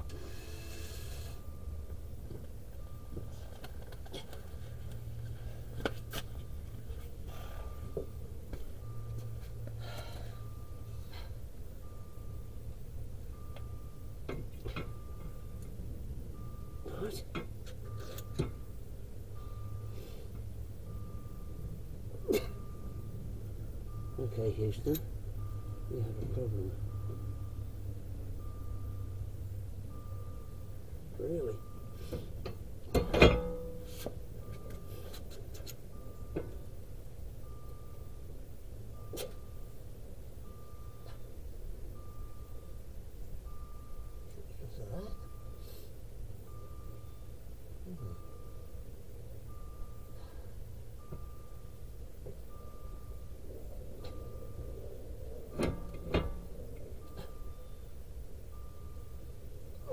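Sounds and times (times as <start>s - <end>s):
electronic warning beep: 0.0s - 5.8s, 6.5s - 59.9s
loud metal clunk: 32.9s - 33.8s.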